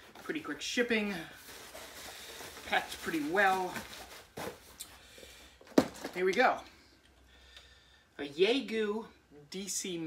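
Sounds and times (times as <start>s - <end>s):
box thumping on concrete floor: 5.6s - 6.2s.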